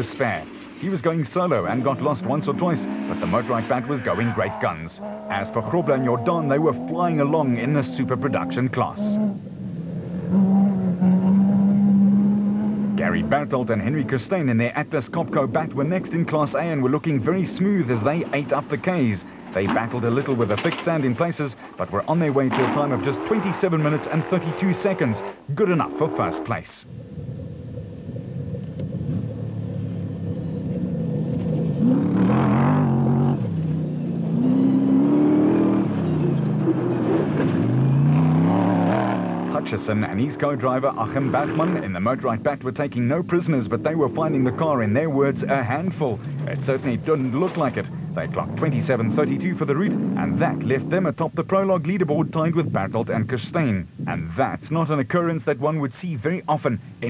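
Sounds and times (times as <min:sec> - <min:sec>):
engine at high revs: 0:01.6 - 0:14.2, 0:22.5 - 0:26.5, 0:28.4 - 0:42.3.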